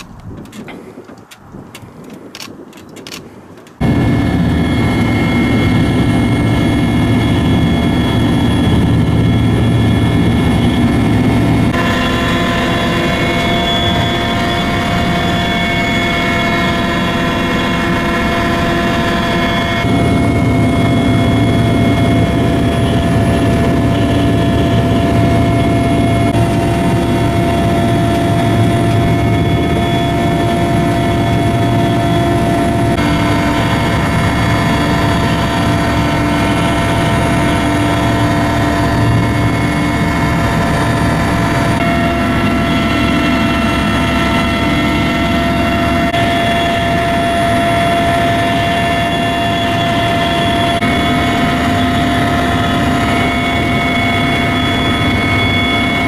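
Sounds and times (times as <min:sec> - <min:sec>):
helicopter engine and rotor drone: 0:00.0 - 0:56.0
whining tones: 0:03.7 - 0:56.0.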